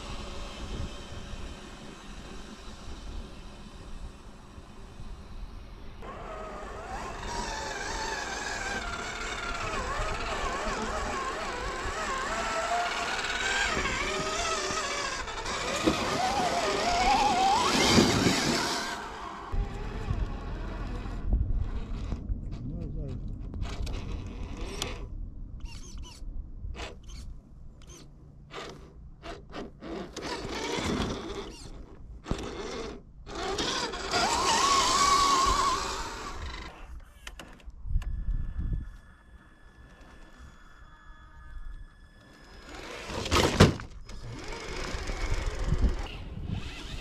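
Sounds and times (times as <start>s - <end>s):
toy car motor and gears whining: 6.0s - 22.2s, 23.4s - 26.2s, 26.8s - 47.0s
drivetrain creaks and click: 36.5s - 38.2s.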